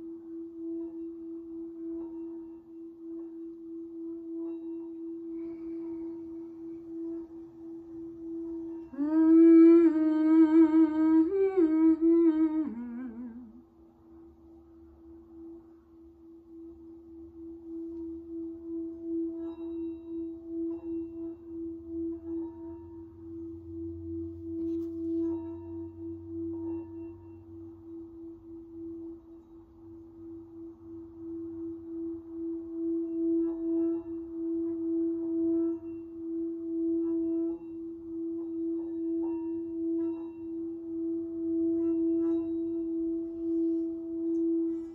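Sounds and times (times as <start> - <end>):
singing bowl ringing: 0.0 - 44.9.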